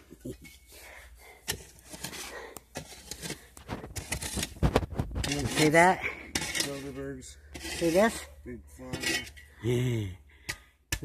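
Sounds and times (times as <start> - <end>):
irregular scrapes and rustles: 0.0 - 9.6.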